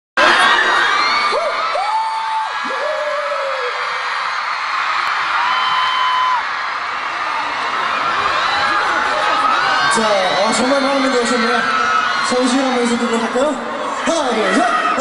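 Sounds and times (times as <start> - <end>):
crowd screaming and cheering: 0.2 - 15.0.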